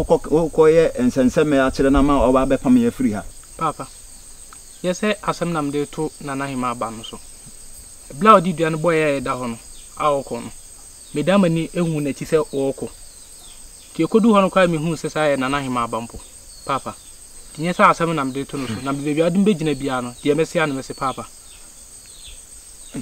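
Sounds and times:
men talking: 0:00.0 - 0:03.9, 0:04.8 - 0:07.2, 0:08.1 - 0:10.6, 0:11.2 - 0:12.9, 0:13.9 - 0:21.3
insects chirring: 0:00.0 - 0:23.0.

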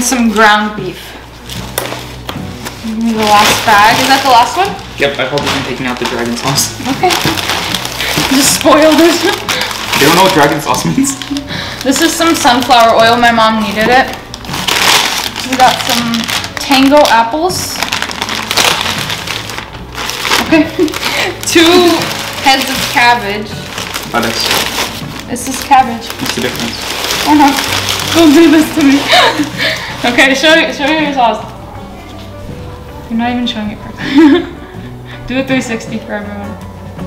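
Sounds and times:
plastic bag rustling and crinkling: 0:00.0 - 0:32.4.

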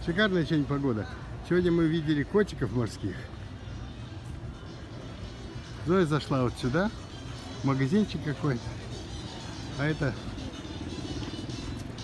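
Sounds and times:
outdoor street noise: 0:00.0 - 0:12.0.

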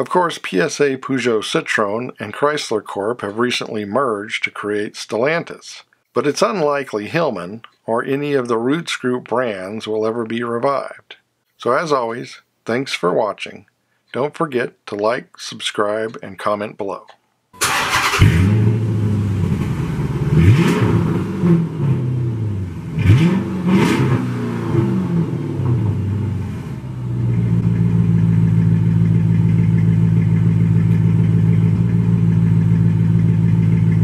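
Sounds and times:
car engine starting and revving: 0:17.6 - 0:34.0
car engine idling: 0:24.4 - 0:34.0.

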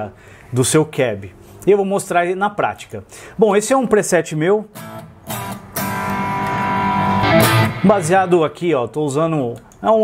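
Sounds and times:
electric guitar chord strummed: 0:04.8 - 0:08.6.

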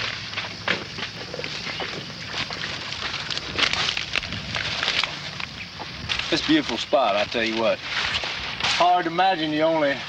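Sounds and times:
dry reeds rustling and crackling: 0:00.0 - 0:10.0.

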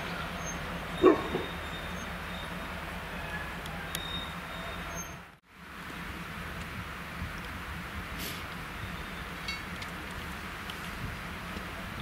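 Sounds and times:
train rumbling past: 0:00.0 - 0:12.0.

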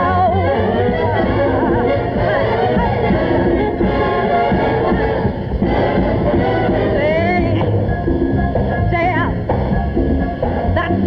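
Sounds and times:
woman singing: 0:00.0 - 0:05.0, 0:06.7 - 0:07.7
big band playing: 0:00.0 - 0:11.0.

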